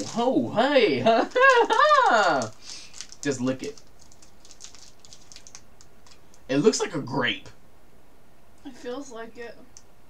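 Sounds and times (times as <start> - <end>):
candy wrapper crackling: 0.0 - 0.3, 1.2 - 6.5.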